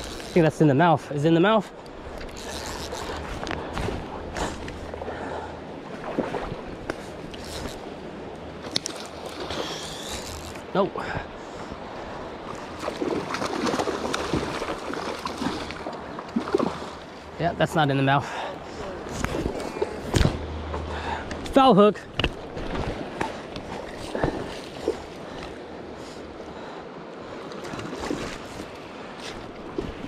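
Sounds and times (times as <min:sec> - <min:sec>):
fishing line and reel clicks: 0:00.0 - 0:00.6, 0:01.8 - 0:04.9, 0:06.8 - 0:08.0, 0:08.6 - 0:10.7
river current rushing: 0:00.0 - 0:30.0.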